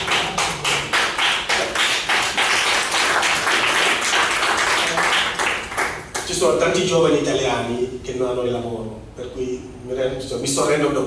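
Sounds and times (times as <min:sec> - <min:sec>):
audience applause: 0:00.0 - 0:06.2.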